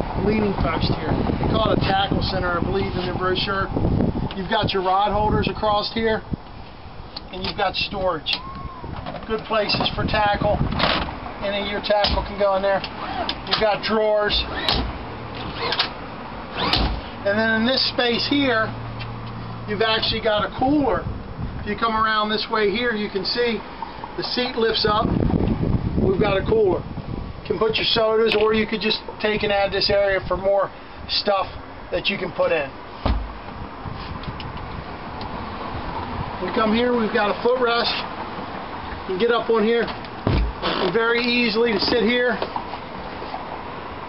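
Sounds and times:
padded lid thumping shut: 33.0s - 33.4s, 40.2s - 40.6s.

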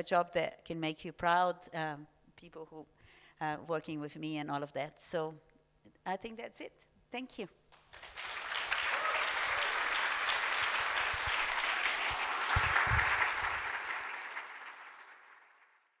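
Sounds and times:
audience applauding: 7.8s - 16.0s.

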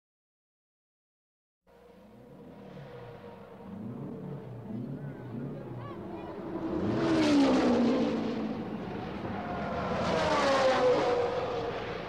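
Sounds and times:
racing cars passing: 1.7s - 12.0s.

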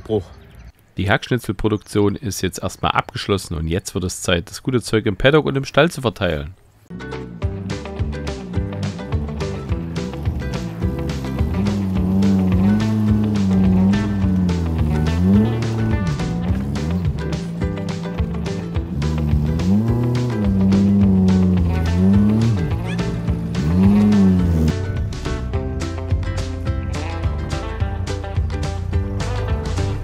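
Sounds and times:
background music with beat: 6.9s - 30.0s
van engine revving: 6.9s - 30.0s.

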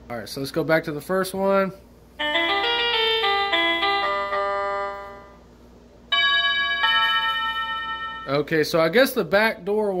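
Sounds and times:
doorbell chime tune: 2.2s - 5.4s, 6.1s - 8.5s
two-note ding-dong: 6.1s - 8.5s.

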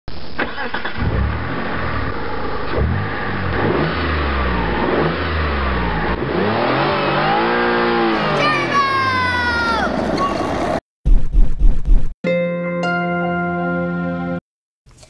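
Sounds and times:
motor revving up and down: 1.0s - 10.8s.

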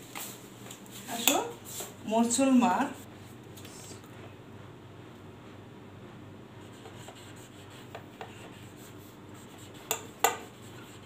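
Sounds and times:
marker pen writing on whiteboard: 6.6s - 11.0s.

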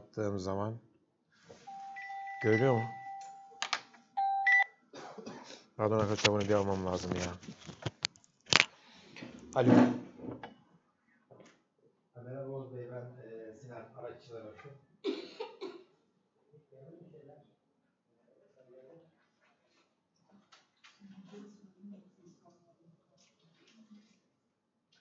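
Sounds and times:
electronic beeping tones: 1.6s - 3.6s, 4.2s - 4.7s
person coughing: 5.0s - 5.7s, 15.1s - 15.9s
faint low voice: 16.6s - 17.4s, 18.2s - 19.2s, 20.9s - 24.2s.

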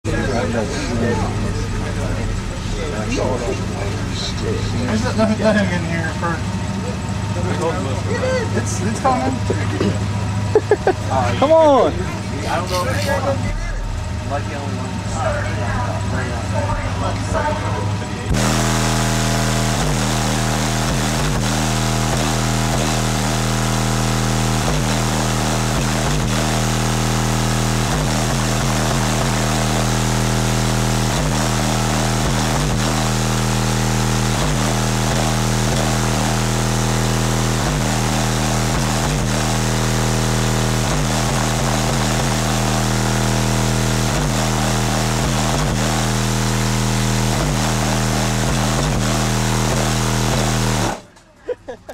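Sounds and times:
subwoofer playing low bass tone: 18.3s - 51.0s.

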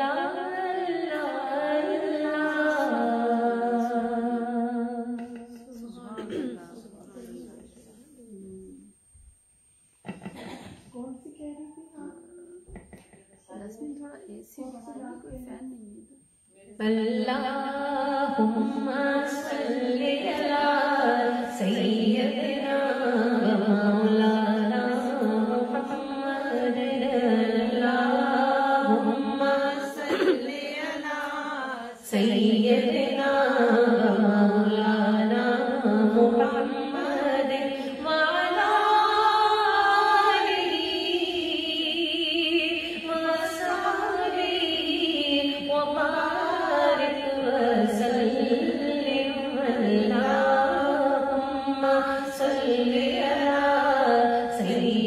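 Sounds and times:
woman singing a long note: 10.9s - 12.8s.

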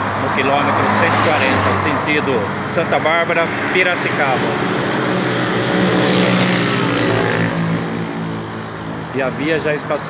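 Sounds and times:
tyre and road noise: 0.0s - 10.0s
vehicle engine hum: 0.0s - 10.0s.

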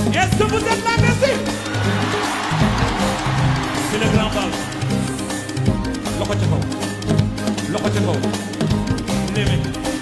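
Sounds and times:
busy percussion: 0.0s - 10.0s.

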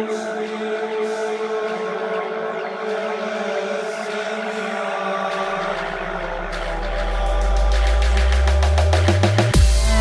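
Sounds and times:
downtempo electronic music: 0.0s - 10.0s.

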